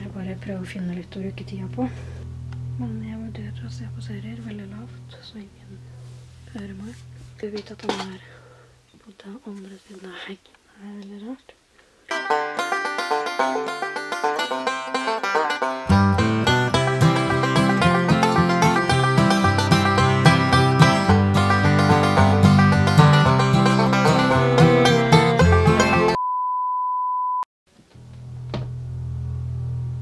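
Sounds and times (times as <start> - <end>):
bass line: 0.0 - 7.2, 15.8 - 26.2, 28.0 - 30.0
low hum: 0.0 - 8.6, 28.0 - 30.0
upbeat plucked string music: 12.1 - 26.2
steady high beep: 26.2 - 27.4.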